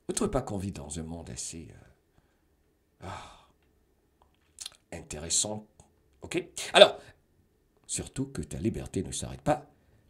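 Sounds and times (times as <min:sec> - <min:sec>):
man sighing: 0:03.0 - 0:03.6.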